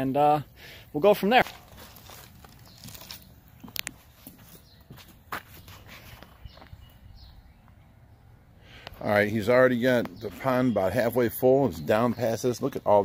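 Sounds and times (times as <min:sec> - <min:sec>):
sharp clicks and scuffs: 0:01.4 - 0:06.8
faint footsteps: 0:01.4 - 0:07.0.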